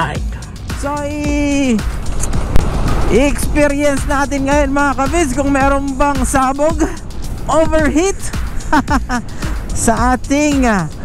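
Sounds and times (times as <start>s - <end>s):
background music: 0.0s - 11.0s
scooter road noise: 0.8s - 11.0s.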